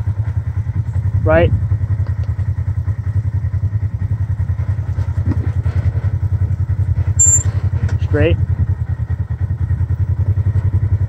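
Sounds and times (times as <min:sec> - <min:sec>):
engine running at low revs: 0:00.0 - 0:11.0
high-pitched chirp: 0:07.2 - 0:07.5.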